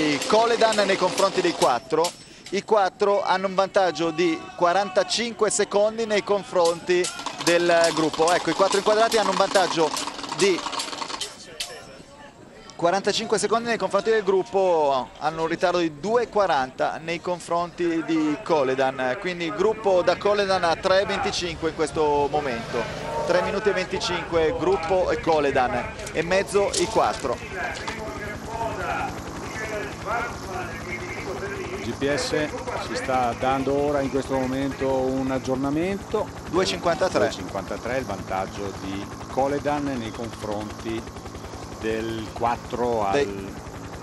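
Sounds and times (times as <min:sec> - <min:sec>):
man speaking: 0:00.0 - 0:43.6
low fast steady throb: 0:05.5 - 0:11.2, 0:17.9 - 0:44.0.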